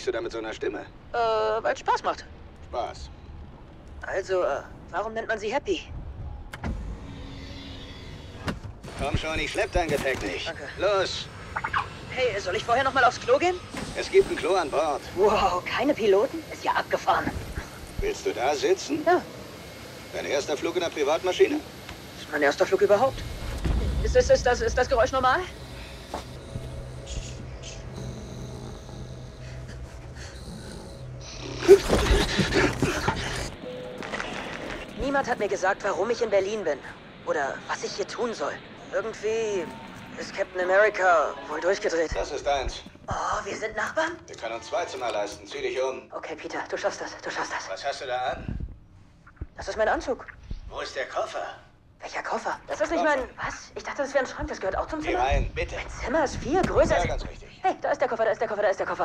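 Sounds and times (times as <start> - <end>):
jet cabin drone: 2.4 - 44.5
electric motor whirring: 6.5 - 36.9
man snoring: 25.9 - 33.6.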